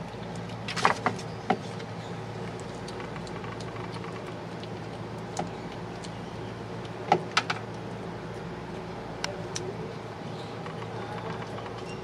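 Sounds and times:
kitten chewing: 0.0 - 12.0
low mechanical hum: 0.0 - 12.0.

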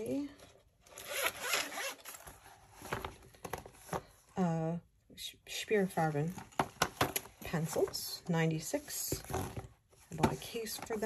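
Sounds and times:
zipper being pulled open: 0.9 - 2.2.

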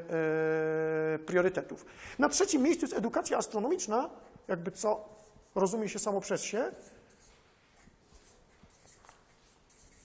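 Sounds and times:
marker writing on paper: 3.6 - 10.0.

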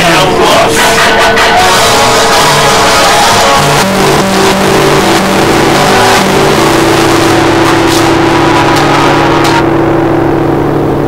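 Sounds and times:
distorted acoustic guitar: 0.0 - 11.0.

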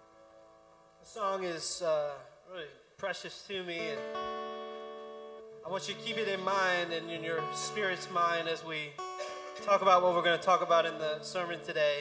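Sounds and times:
acoustic guitar chord ringing: 0.0 - 1.1, 3.8 - 12.0
man talking: 1.0 - 4.1, 5.6 - 12.0.

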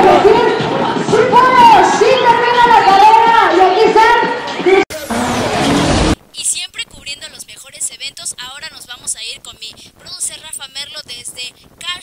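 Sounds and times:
rushing noise: 4.9 - 6.2
woman speaking: 6.3 - 12.0.

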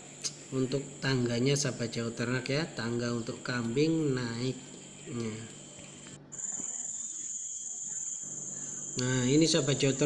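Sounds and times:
insects chirring: 0.1 - 10.0.

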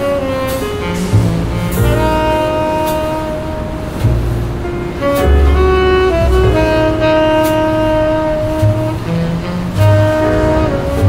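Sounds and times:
saxophone long note: 0.0 - 11.0
smooth jazz band: 0.0 - 11.0.

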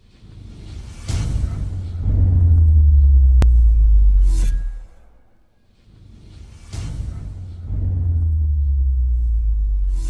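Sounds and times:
deep bass rumble: 1.4 - 5.4, 7.1 - 10.0
sharp click: 3.4 - 5.0.

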